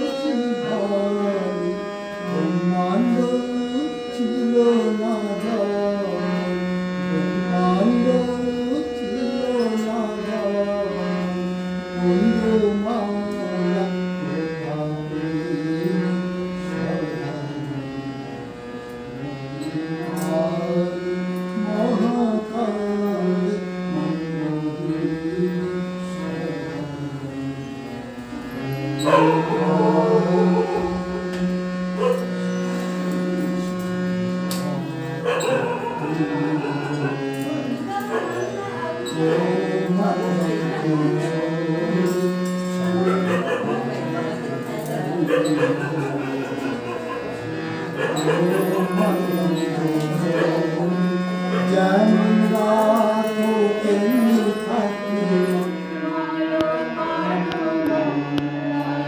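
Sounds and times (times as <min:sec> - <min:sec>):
harmonium playing chords: 0:00.0 - 0:59.0
voices singing: 0:00.0 - 0:59.0.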